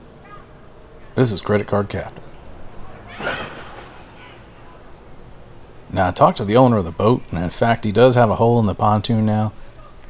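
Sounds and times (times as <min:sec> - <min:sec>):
distant person's high cry: 0:02.9 - 0:04.9.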